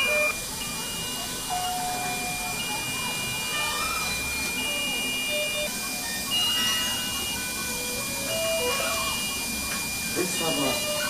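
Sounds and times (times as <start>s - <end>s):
electronic monitor alarm beeps: 0.0s - 11.0s
steady high-pitched tone: 0.0s - 11.0s.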